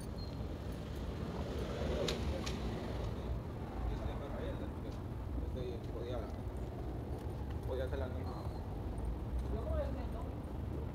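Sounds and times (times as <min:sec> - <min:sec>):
road traffic rumble: 0:00.0 - 0:10.9.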